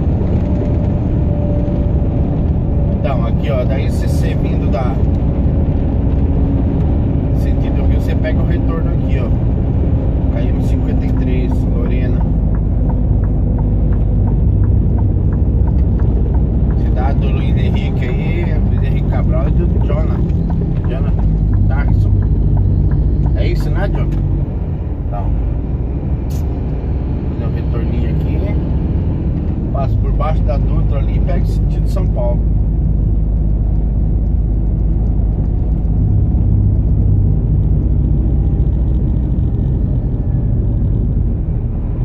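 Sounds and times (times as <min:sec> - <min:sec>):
road noise inside cab: 0:00.0 - 0:42.0
truck diesel engine rumble: 0:00.0 - 0:42.0.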